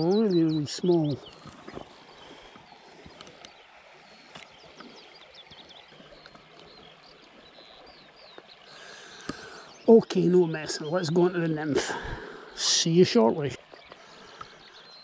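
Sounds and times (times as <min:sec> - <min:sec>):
small birds chirping: 0:00.0 - 0:15.0.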